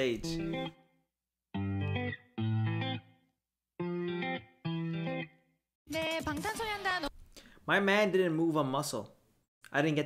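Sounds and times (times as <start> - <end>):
electric guitar chords: 0.1 - 0.8, 1.5 - 5.5.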